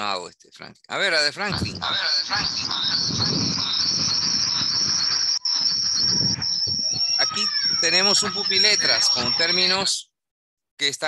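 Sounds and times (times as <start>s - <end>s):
high-pitched chirring hiss: 1.8s - 9.8s
person speaking: 7.1s - 9.9s.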